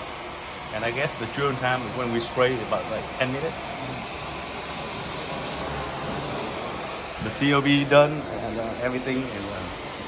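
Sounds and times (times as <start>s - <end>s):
carpet cleaner suction: 0.0s - 10.0s.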